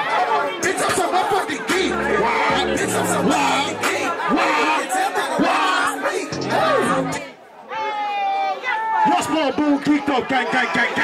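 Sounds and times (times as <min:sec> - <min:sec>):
rapper and crowd shouting lyrics: 0:00.0 - 0:07.4, 0:08.6 - 0:11.0
hip-hop beat with bass: 0:00.6 - 0:07.2.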